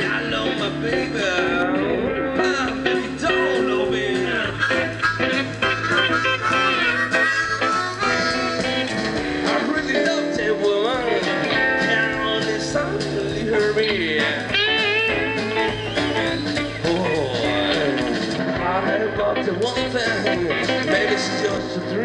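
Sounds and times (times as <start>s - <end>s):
bent wavering lead guitar: 0.0s - 22.0s
blues-rock band playing: 0.0s - 22.0s.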